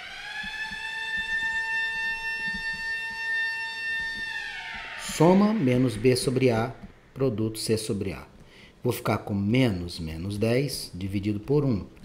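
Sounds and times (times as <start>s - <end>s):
siren rising and holding: 0.0s - 7.3s.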